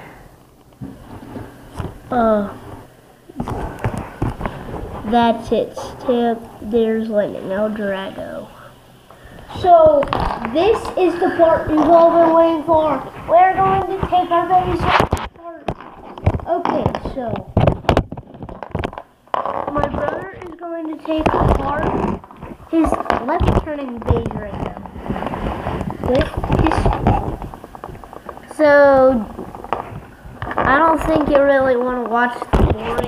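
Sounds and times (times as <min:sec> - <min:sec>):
child talking: 0:02.1 - 0:02.6, 0:05.0 - 0:08.7, 0:09.5 - 0:15.8, 0:16.4 - 0:17.6, 0:19.6 - 0:22.1, 0:22.7 - 0:25.0, 0:26.0 - 0:27.2, 0:28.5 - 0:29.4, 0:30.6 - 0:33.0.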